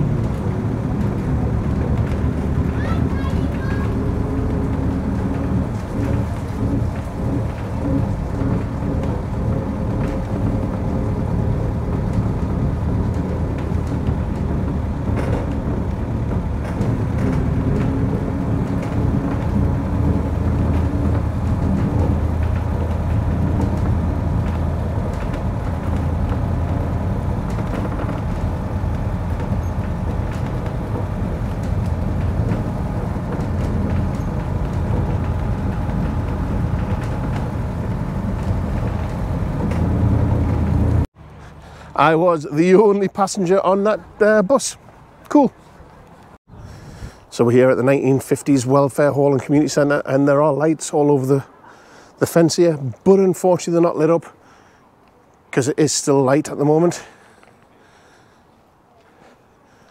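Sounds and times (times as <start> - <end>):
bus engine low rumble: 0.0 - 59.9
tyre and road noise: 0.0 - 59.9.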